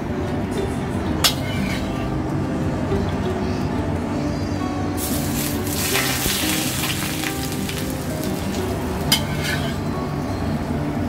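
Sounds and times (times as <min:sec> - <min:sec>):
hot oil sizzling on fish: 0:05.0 - 0:09.8.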